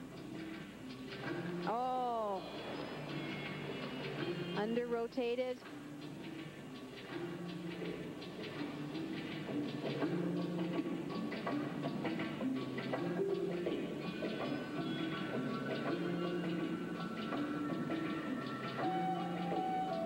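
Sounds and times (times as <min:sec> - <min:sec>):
melody of held notes: 0:05.8 - 0:20.0.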